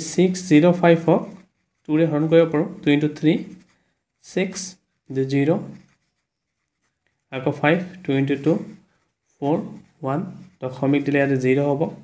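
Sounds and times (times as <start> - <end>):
man speaking: 0.0 - 5.8, 7.3 - 8.8, 9.4 - 12.0
pen scratching on paper: 0.0 - 12.0.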